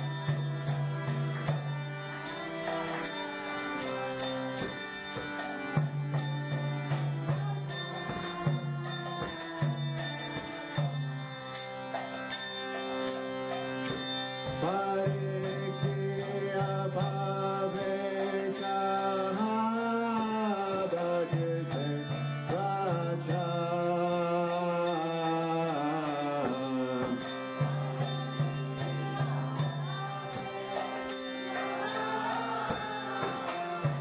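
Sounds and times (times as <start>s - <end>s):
hand cymbals striking: 0.0s - 34.0s
person chanting: 14.5s - 34.0s.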